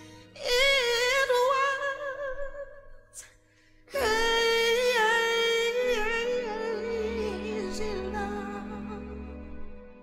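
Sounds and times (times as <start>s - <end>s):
woman singing with vibrato: 0.0s - 3.3s, 3.9s - 10.0s
soft backing music: 0.0s - 10.0s.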